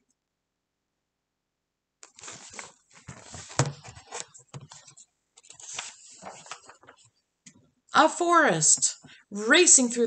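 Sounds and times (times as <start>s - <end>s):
book pages rustling and scraping: 2.0s - 7.2s.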